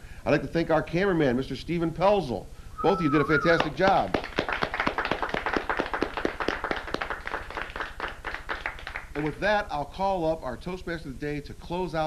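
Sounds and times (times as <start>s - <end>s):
small group applauding: 3.3s - 9.4s.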